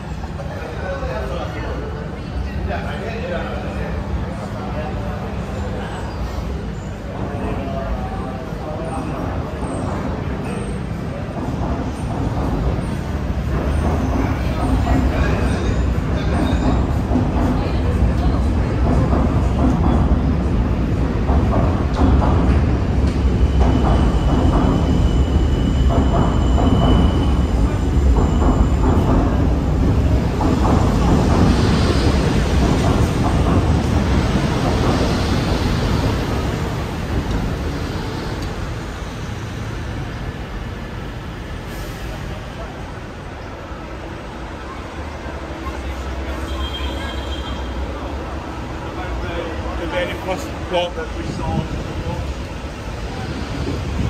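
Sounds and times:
city traffic rumble: 0.0s - 54.0s
faint voices of passers-by: 0.0s - 54.0s.

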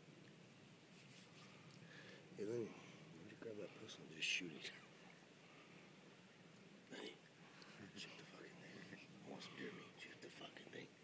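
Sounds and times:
faint whispering voices: 2.4s - 6.0s, 6.8s - 11.0s.

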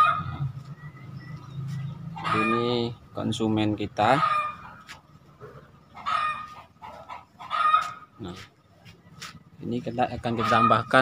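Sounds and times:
chickens calling: 0.0s - 11.0s.

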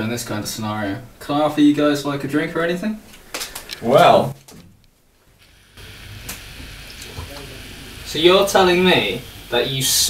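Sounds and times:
cola fizzing while poured: 5.4s - 9.8s.

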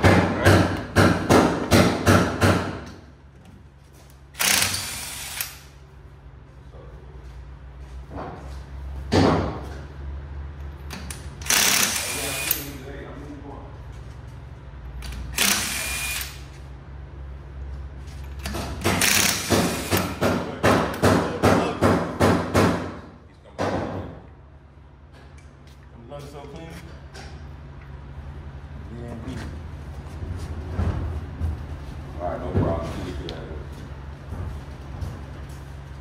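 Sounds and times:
impact wrench hammering: 0.0s - 3.0s, 10.9s - 12.8s, 18.4s - 24.1s.

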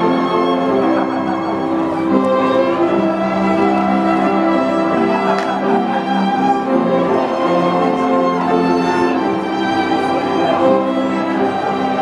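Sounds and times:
string ensemble playing: 0.0s - 12.0s.

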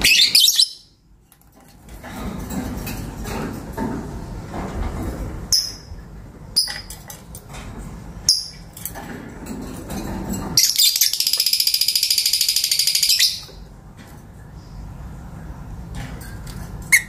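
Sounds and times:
bird chirps: 0.0s - 1.0s, 10.6s - 13.6s.

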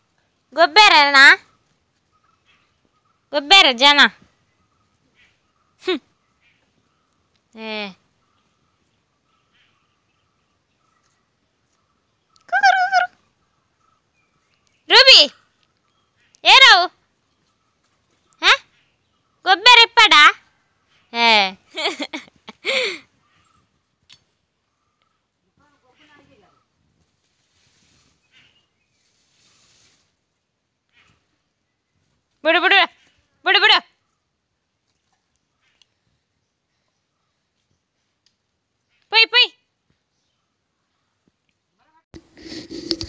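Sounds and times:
faint rustles: 22.0s - 32.4s.

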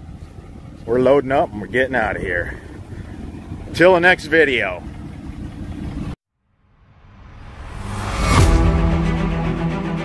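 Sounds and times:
truck engine rumbling: 0.0s - 6.2s
music: 7.8s - 10.0s.

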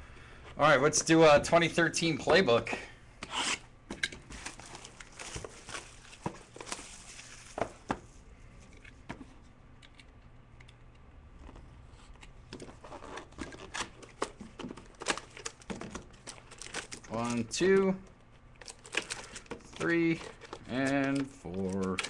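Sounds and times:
plastic wrapping crinkling: 4.3s - 7.8s, 12.8s - 17.8s.

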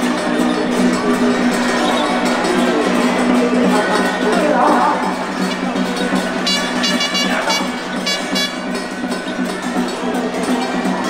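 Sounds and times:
crowd noise: 0.0s - 11.0s
processional music: 0.0s - 11.0s
short high-pitched honking blasts: 6.4s - 8.8s.

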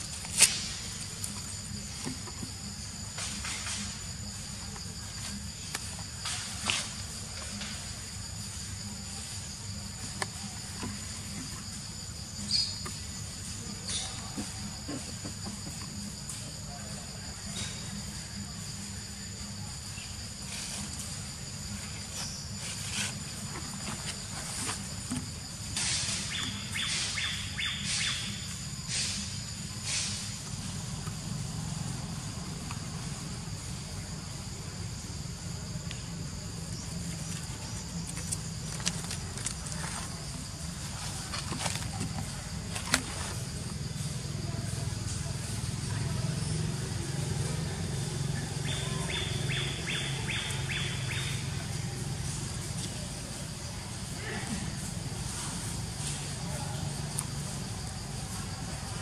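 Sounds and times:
high hiss of insects: 0.0s - 59.0s
bird chirping: 12.4s - 13.2s, 26.1s - 28.5s.

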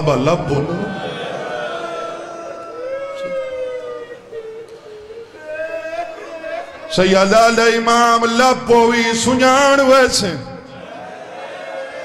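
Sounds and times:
person wailing in mourning: 1.8s - 7.2s.

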